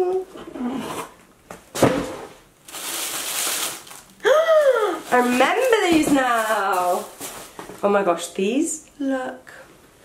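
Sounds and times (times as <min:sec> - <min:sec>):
paper packaging rustling: 0:02.6 - 0:07.7.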